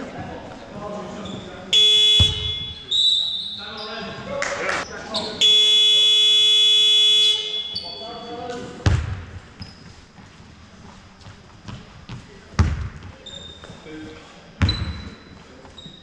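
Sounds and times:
scoreboard buzzer: 1.8s - 2.9s, 5.4s - 7.9s
loud thud: 8.8s - 9.4s.

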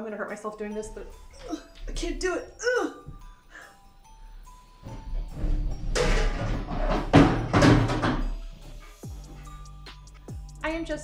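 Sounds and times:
quiet background music: 0.0s - 11.0s
knocks: 5.4s - 8.4s.

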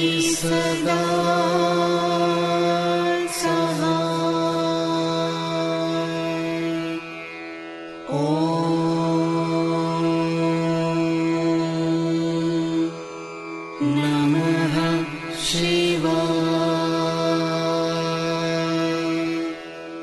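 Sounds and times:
devotional mantra chanting: 0.0s - 20.0s.

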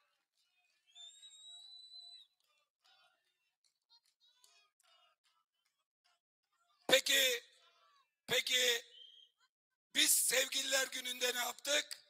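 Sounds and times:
high steady whistle: 0.9s - 2.2s, 8.9s - 9.3s.

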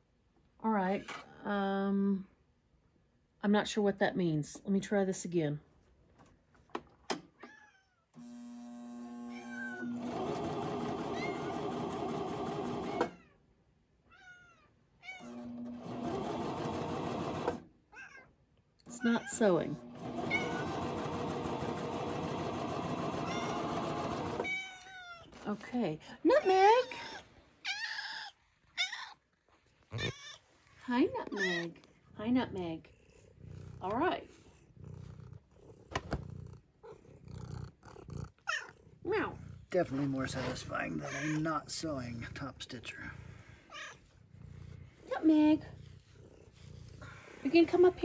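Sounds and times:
cat meowing: 9.3s - 10.0s, 14.1s - 15.3s, 17.9s - 18.3s, 20.3s - 20.7s, 24.4s - 25.3s, 26.8s - 29.2s, 29.9s - 30.5s, 31.2s - 31.8s, 38.4s - 38.8s, 40.7s - 41.6s, 43.7s - 44.0s
sewing machine stitching: 9.8s - 13.2s, 15.3s - 17.7s, 19.7s - 24.6s.

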